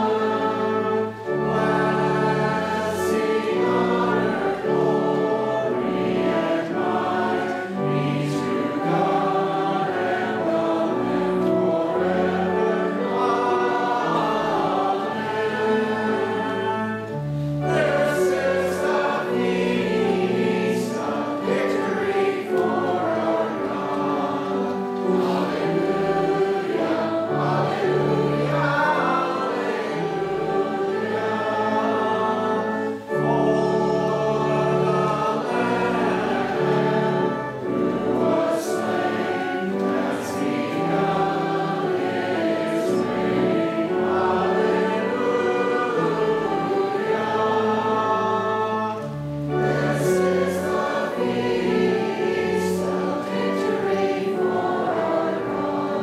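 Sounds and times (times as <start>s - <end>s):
group singing a hymn: 0.0s - 56.0s
sustained low accompanying notes: 0.0s - 56.0s
singers breathing: 17.2s - 17.7s.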